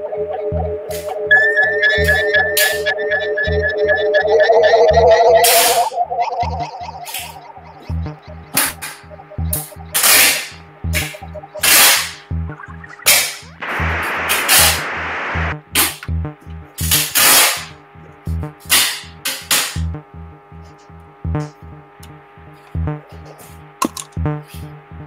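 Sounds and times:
low pulsing electronic beat: 0.0s - 25.0s
sharp hissing noise bursts: 13.6s - 15.5s
rising noise sweep: 13.6s - 15.6s.

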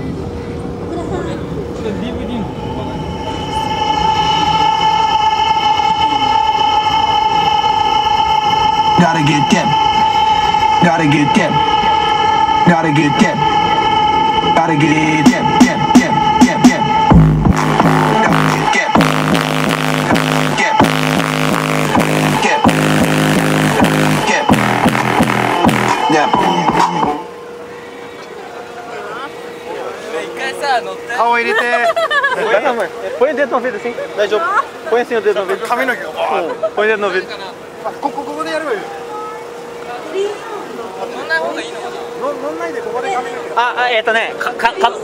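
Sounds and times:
loud electronic dance music: 8.2s - 27.3s
deep bass hit: 14.6s - 27.2s
faint humming tone: 36.4s - 45.0s.

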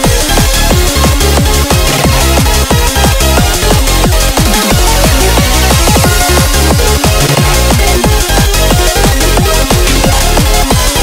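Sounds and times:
fast electronic music: 0.0s - 11.0s.

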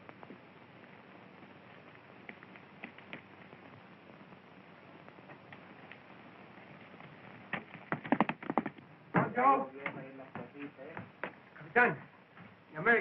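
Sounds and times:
film soundtrack hiss: 0.0s - 13.0s
rapid clattering knocks: 6.8s - 9.4s.

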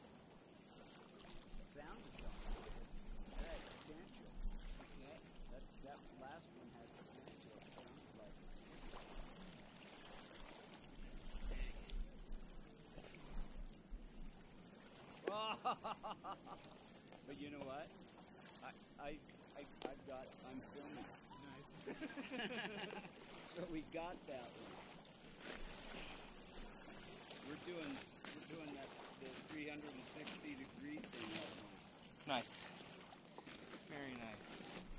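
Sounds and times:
waves lapping on pebble shore: 0.0s - 34.9s.

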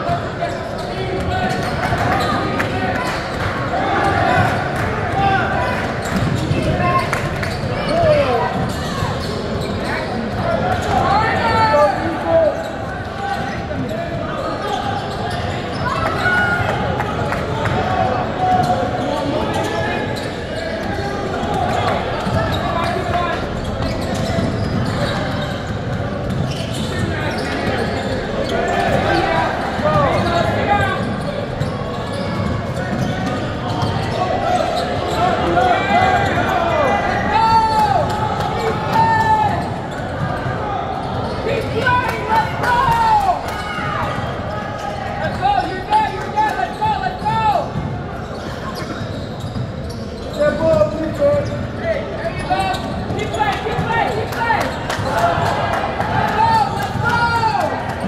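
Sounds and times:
sneakers squeaking: 0.0s - 58.0s
voices echoing in hall: 0.0s - 58.0s.

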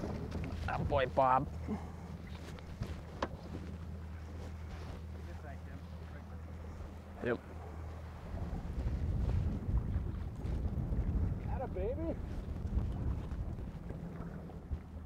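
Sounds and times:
outboard motor running: 0.0s - 15.0s
wind buffeting microphone: 0.0s - 15.0s.

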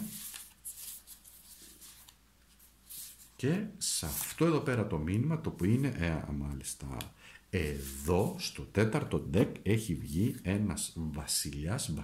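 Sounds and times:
faint rustling of cards: 0.0s - 12.0s.

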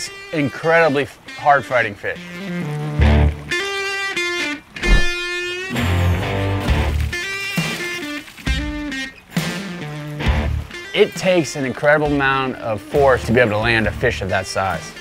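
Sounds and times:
electric guitar music: 2.2s - 10.9s
deep bass: 4.8s - 5.5s.

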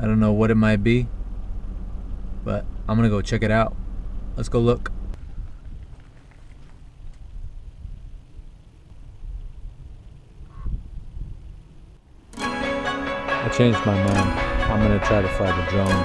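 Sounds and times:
wind rumble on microphone: 3.6s - 12.0s
loud background music: 12.4s - 16.0s.

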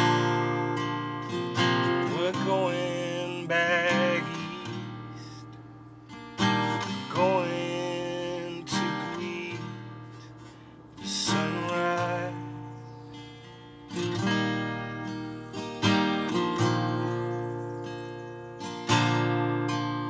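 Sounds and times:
acoustic guitar strummed chords: 0.0s - 20.0s.

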